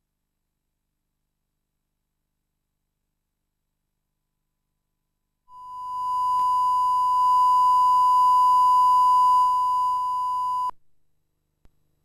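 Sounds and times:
steady high test tone beep: 5.5s - 10.7s
faint hum: 5.5s - 10.8s.

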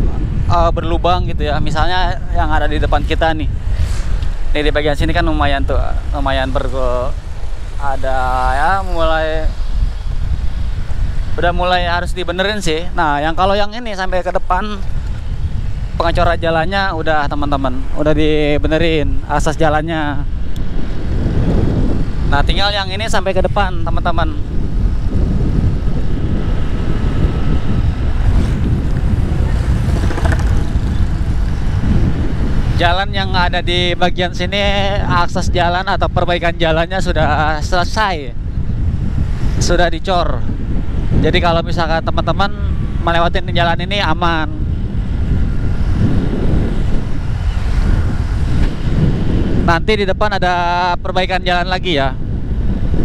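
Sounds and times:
wind rush on microphone: 0.0s - 53.0s
motorcycle engine running: 27.8s - 31.8s.

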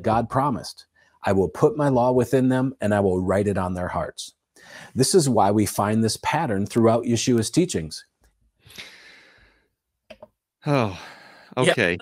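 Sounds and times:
man sighing: 10.6s - 11.6s.

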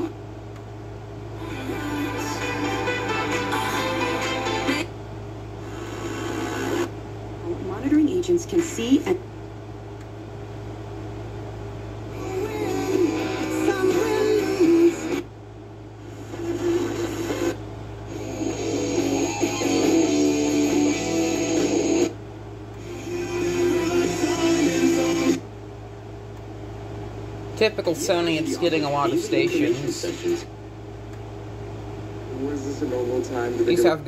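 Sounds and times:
radio music through speaker: 1.4s - 4.9s, 5.6s - 6.9s, 16.2s - 22.2s, 22.8s - 25.4s, 27.6s - 30.6s, 32.3s - 34.0s.

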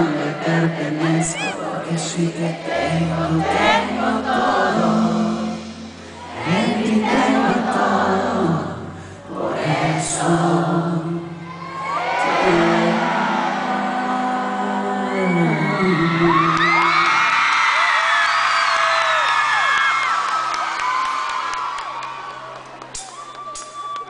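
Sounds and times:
audience cheering and whooping: 15.1s - 24.0s.

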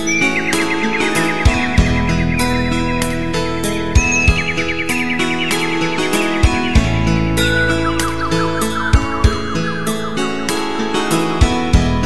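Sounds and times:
high twittering trill: 0.0s - 6.8s
instrumental ballad backing track: 0.0s - 12.0s.

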